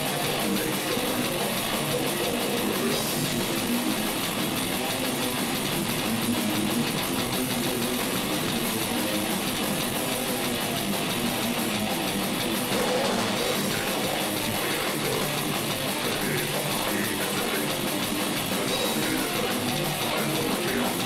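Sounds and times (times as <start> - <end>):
drum kit: 0.0 - 21.0
electric guitars: 0.0 - 21.0.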